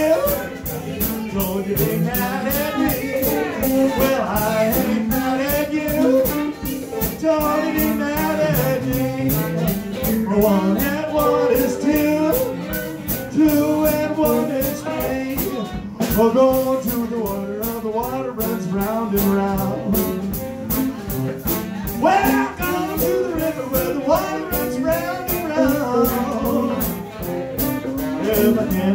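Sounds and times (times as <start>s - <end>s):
drum kit cymbal beat: 0.0s - 28.9s
electric guitar: 0.0s - 28.9s
lead melody: 0.0s - 28.9s.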